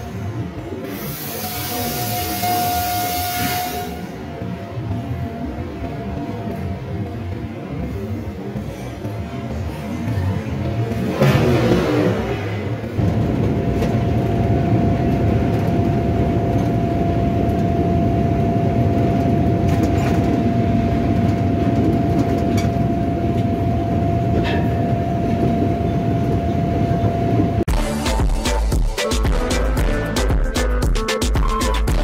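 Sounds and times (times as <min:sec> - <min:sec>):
train rumbling on track: 0:00.0 - 0:30.3.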